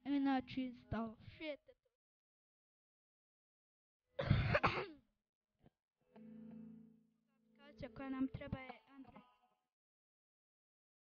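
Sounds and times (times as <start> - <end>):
person coughing: 4.2 - 5.0.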